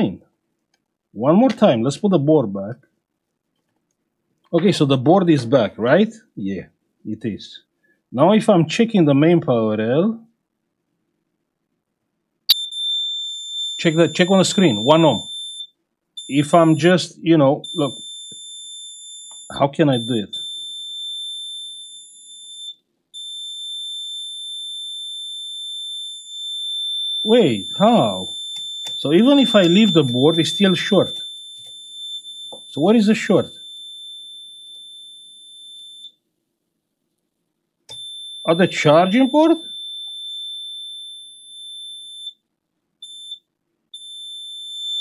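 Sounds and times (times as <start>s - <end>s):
multimeter continuity beeper tone: 12.5s - 17.0s, 17.6s - 36.2s, 37.9s - 42.4s, 43.0s - 45.0s.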